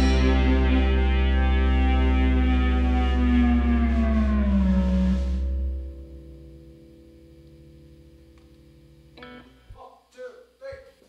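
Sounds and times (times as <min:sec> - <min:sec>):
steady low bass: 0:00.0 - 0:09.2
blues rock band sustained note: 0:00.0 - 0:09.7.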